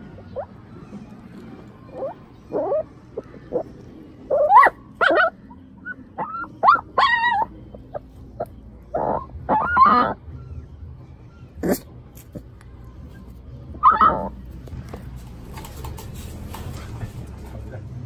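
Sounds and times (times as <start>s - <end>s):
puppy whimpering and yelping: 0.1s - 0.6s, 1.3s - 14.4s.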